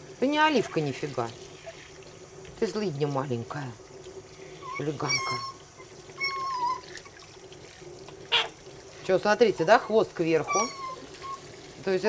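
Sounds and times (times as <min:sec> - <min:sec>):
water running from hand shower: 0:00.0 - 0:12.0.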